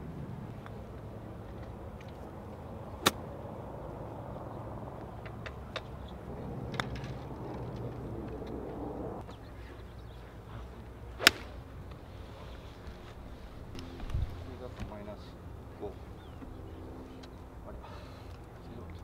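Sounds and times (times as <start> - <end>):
golf club striking ball: 3.0 - 3.3, 11.2 - 11.6.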